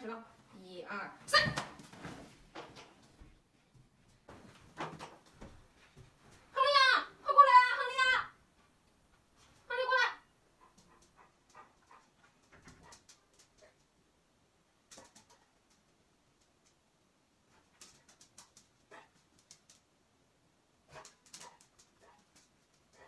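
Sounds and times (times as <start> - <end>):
soft rustles: 1.7 - 6.6, 8.5 - 9.7.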